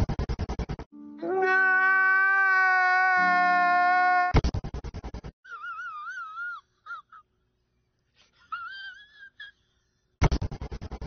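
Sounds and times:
man crying in high-pitched wails: 1.4 - 4.3.

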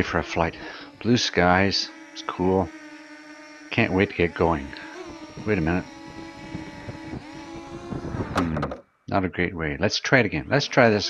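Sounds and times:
drone propellers whining: 0.0 - 8.8, 10.6 - 11.0.

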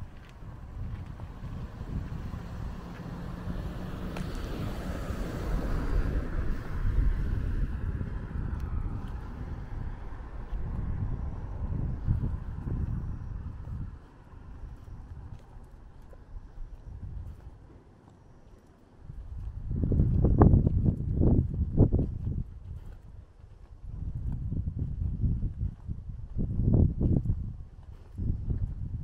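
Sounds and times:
wind buffeting microphone: 0.0 - 17.7, 19.0 - 29.0.

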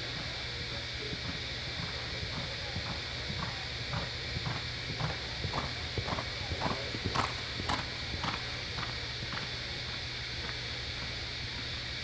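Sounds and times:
steady low hum: 0.0 - 12.0
horse hoofbeats on dirt: 1.2 - 9.5.

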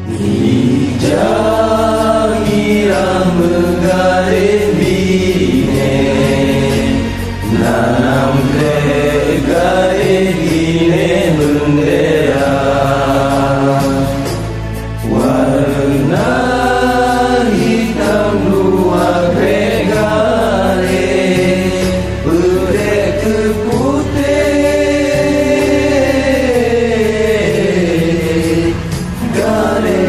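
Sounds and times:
percussion beat: 0.0 - 30.0
steady bass: 0.0 - 30.0
voices singing in chanting style: 0.0 - 30.0.

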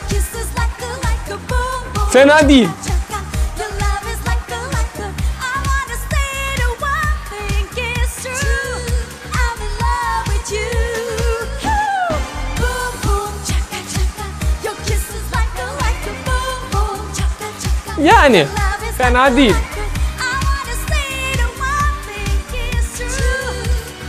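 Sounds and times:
woman singing pop dance song: 0.0 - 24.0
steady dance beat: 2.0 - 3.1, 17.8 - 20.0.

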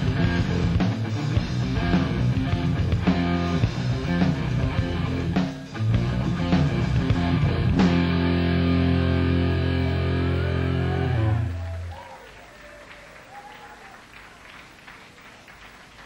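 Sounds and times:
rock band final chord: 0.0 - 11.9
faint audience applause: 9.9 - 16.0.

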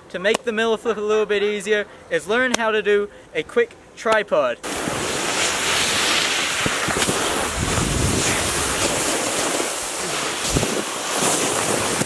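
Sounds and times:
snowboards sliding on packed snow: 4.6 - 12.0
wind on microphone: 4.8 - 12.0.

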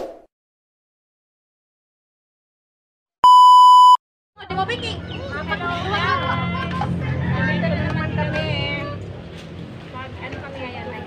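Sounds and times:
high test tone beep: 3.2 - 4.0.

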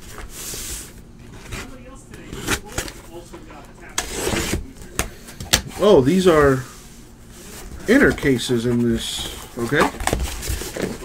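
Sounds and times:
cardboard scraping rustles: 0.0 - 3.0, 5.8 - 11.0.

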